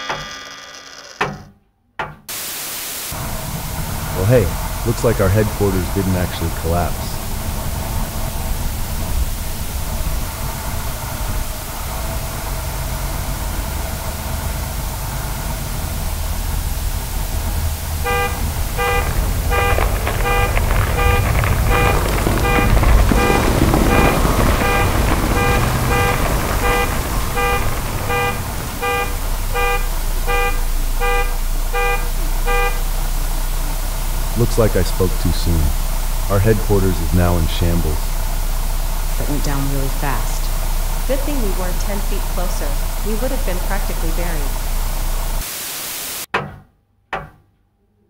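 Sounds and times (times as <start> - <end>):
low rumble: 3.2 - 45.4
building collapsing crash: 3.2 - 45.5
car alarm honking: 4.2 - 7.2, 17.2 - 33.0.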